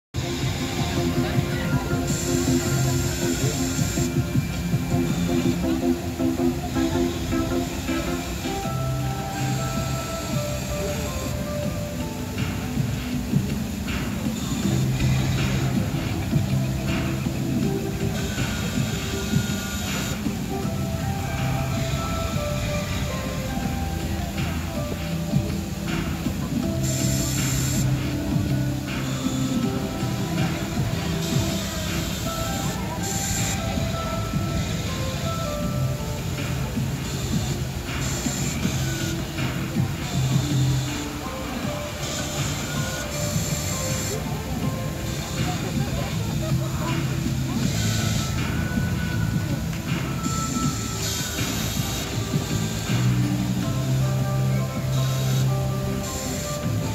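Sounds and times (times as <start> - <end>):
music playing: 0.1 - 56.9
hissing bursts: 0.2 - 56.9.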